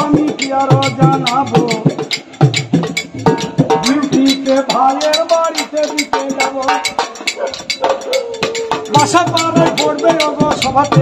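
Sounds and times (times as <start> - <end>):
sharp metallic percussion strikes: 0.0 - 11.0.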